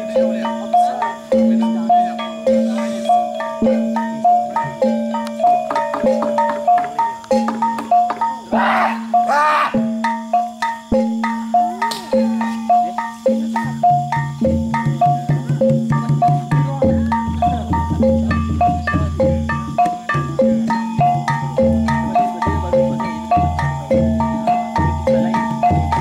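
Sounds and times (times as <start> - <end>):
metallophones repeating melody: 0.0 - 26.0.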